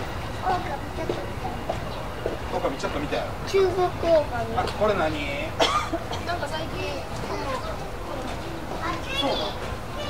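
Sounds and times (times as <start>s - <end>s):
children's voices: 0.4s - 1.8s, 3.4s - 4.7s, 6.3s - 10.0s
people talking: 0.4s - 1.9s, 2.5s - 10.0s.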